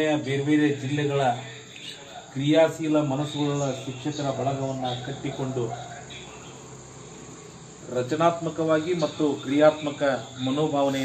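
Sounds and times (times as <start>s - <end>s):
man speaking: 0.0s - 6.6s, 7.8s - 11.0s
crickets chirring: 0.0s - 11.0s.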